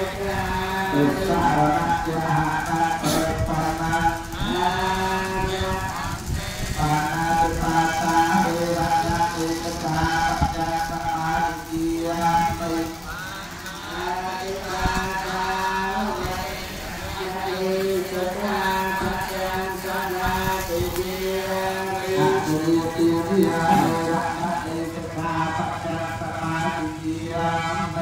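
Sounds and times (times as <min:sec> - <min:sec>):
chanting on a steady pitch: 0:00.0 - 0:28.0.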